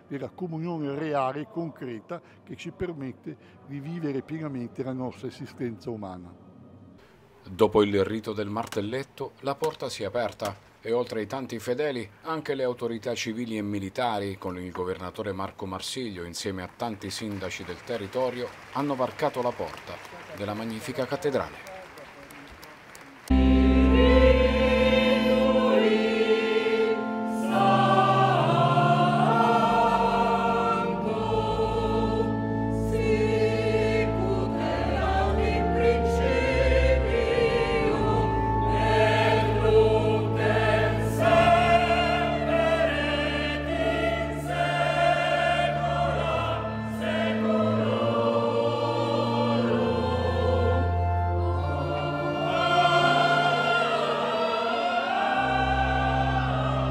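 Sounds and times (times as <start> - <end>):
mixed choir singing: 23.3 - 56.9
organ with held bass notes: 23.3 - 56.9.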